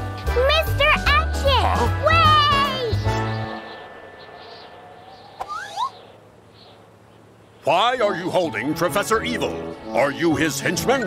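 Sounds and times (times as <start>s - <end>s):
rising whistle-like squeaks: 3.2s - 6.2s.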